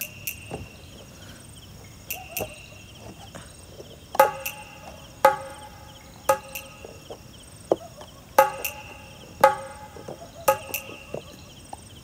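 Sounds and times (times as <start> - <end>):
crickets chirping: 0.0 - 12.0
sharp ringing knocks: 4.2 - 7.2, 8.4 - 11.4.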